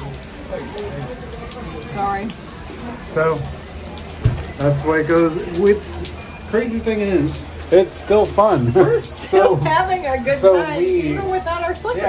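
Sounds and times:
faint voices talking: 0:00.0 - 0:12.0
heavy rain on pavement: 0:00.0 - 0:12.0.

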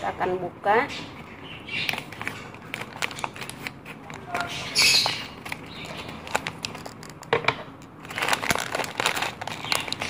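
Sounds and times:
plastic bag crinkling: 0:01.7 - 0:10.0
scissors cutting plastic: 0:01.8 - 0:07.3, 0:08.0 - 0:10.0.

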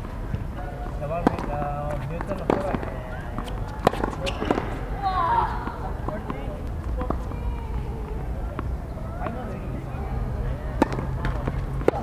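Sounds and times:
tennis ball racquet hits: 0:01.0 - 0:04.8, 0:10.7 - 0:12.0.

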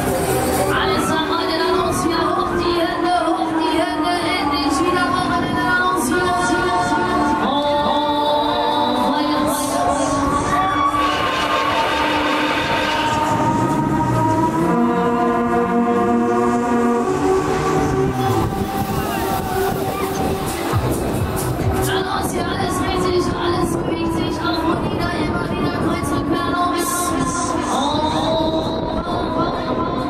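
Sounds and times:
loud fairground music: 0:00.0 - 0:30.0
rumble of running ride: 0:00.0 - 0:30.0.

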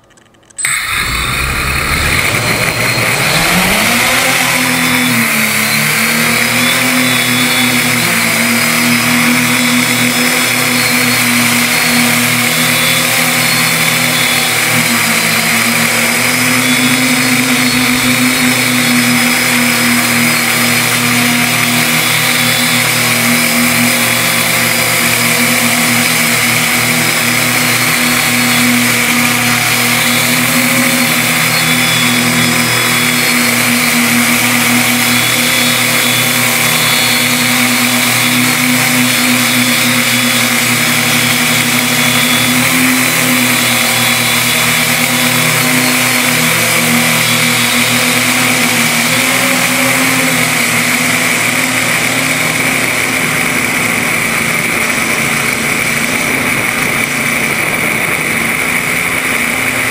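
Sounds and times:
multicopter rotors buzzing whine: 0:00.0 - 0:59.9.

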